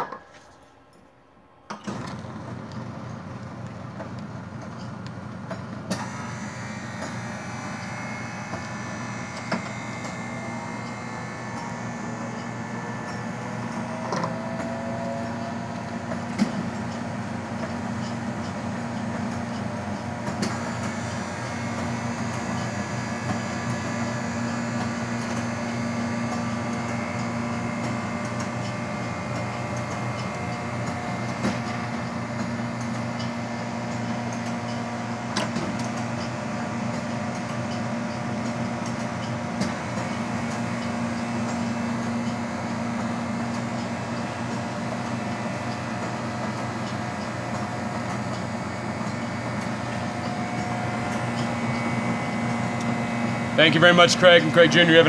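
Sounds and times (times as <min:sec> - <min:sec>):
soft serve machine humming: 0:00.0 - 0:55.0.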